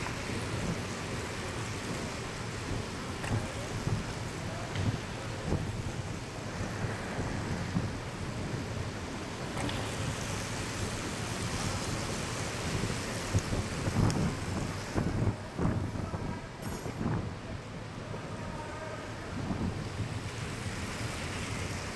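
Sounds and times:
bike tyres rushing on wooden track: 0:00.0 - 0:21.9.

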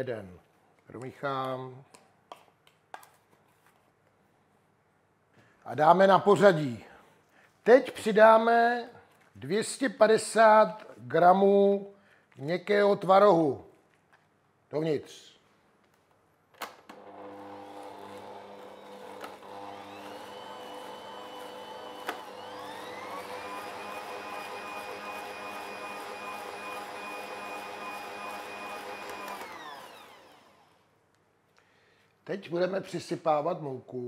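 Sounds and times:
stand mixer motor whining: 0:16.9 - 0:30.8.

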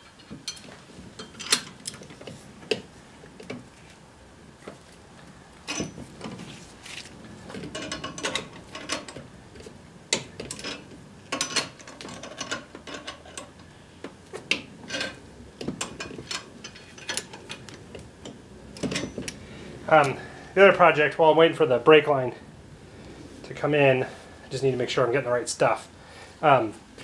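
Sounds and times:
wrench clicking and scraping metal: 0:07.6 - 0:09.2, 0:10.1 - 0:13.7, 0:14.5 - 0:15.2, 0:15.8 - 0:19.4.

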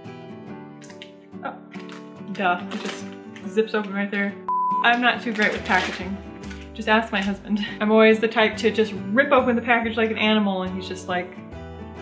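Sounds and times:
acoustic guitar music: 0:00.0 - 0:12.0
plastic bag crinkling: 0:01.7 - 0:04.2, 0:04.8 - 0:07.6.

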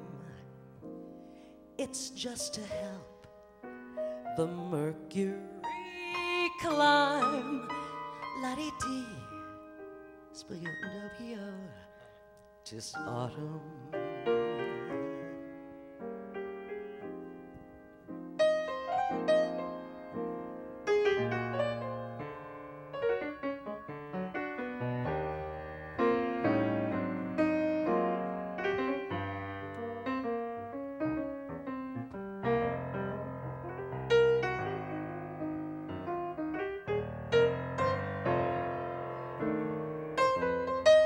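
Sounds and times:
solo jazz piano: 0:00.0 - 0:41.0.

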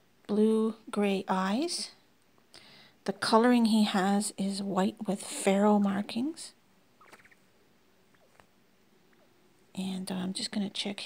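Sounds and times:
quail trilling chirp: 0:07.0 - 0:07.5, 0:08.1 - 0:08.4.

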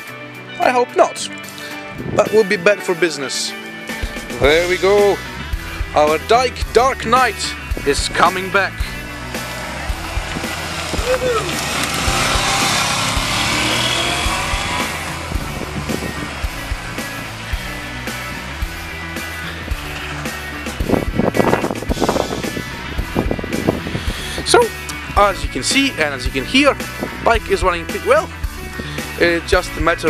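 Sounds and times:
background music: 0:00.0 - 0:30.0
motorcycle passing by: 0:07.9 - 0:24.1.

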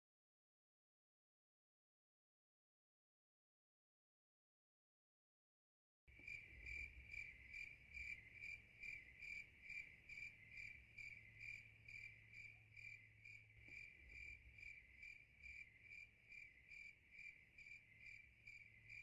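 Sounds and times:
crickets chirping: 0:06.1 - 0:19.0.

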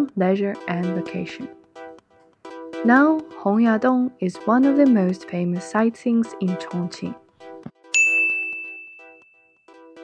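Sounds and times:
soft background music: 0:00.0 - 0:10.0
bright chime ding: 0:07.9 - 0:09.6.

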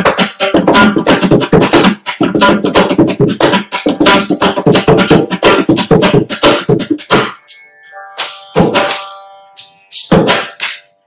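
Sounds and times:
drum strokes: 0:00.0 - 0:07.6, 0:08.2 - 0:10.9.

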